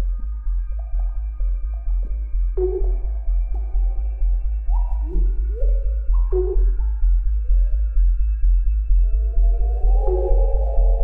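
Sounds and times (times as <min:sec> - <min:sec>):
low bass pulse: 0:00.0 - 0:11.0
sustained synth tones: 0:09.0 - 0:11.0.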